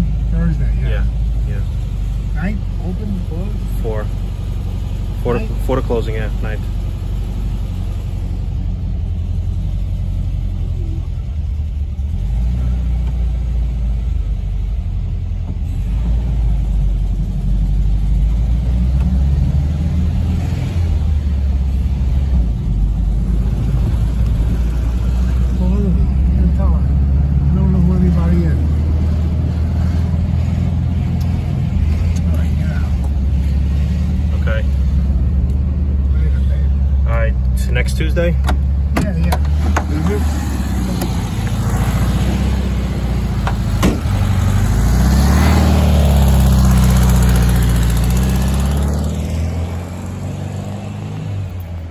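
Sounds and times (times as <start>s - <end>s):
vehicle engine and road rumble: 0.0s - 51.9s.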